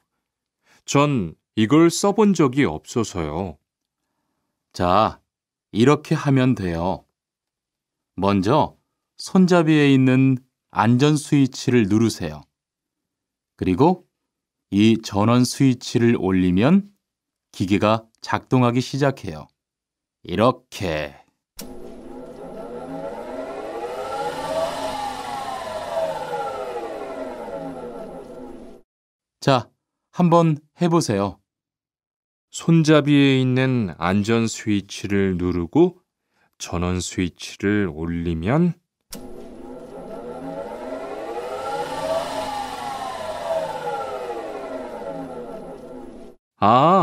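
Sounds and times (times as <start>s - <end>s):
electric saw running: 21.6s - 28.8s, 39.2s - 46.4s.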